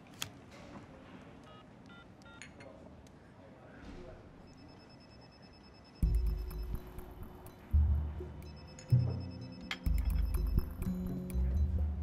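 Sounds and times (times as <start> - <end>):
phone keypad tones: 1.4 - 2.6.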